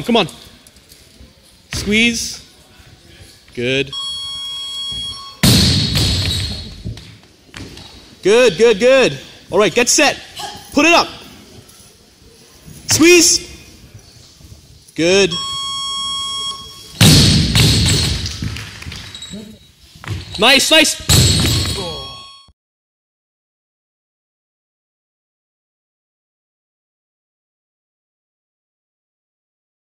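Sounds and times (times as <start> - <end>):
gymnasium echo: 1.2 - 22.3
barbell thudding on platform: 5.4 - 6.9.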